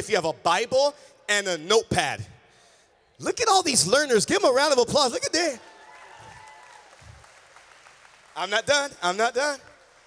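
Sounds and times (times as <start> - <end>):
congregation applauding: 5.4 - 10.0.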